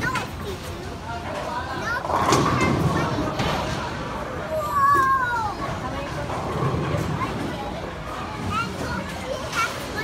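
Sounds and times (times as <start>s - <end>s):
bowling alley background noise: 0.0s - 10.0s.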